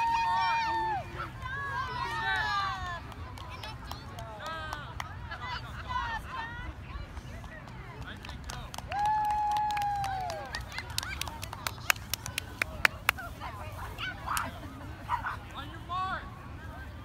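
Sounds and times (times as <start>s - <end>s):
sharp claps: 7.6s - 13.2s.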